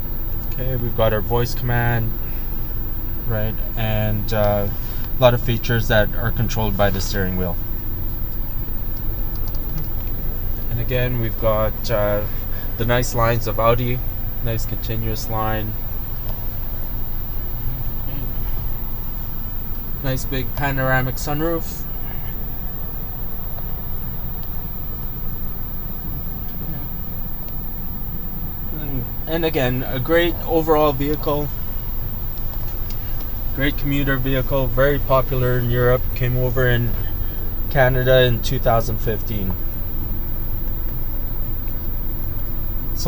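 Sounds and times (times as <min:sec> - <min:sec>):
car engine idling rumble: 0:00.0 - 0:43.0.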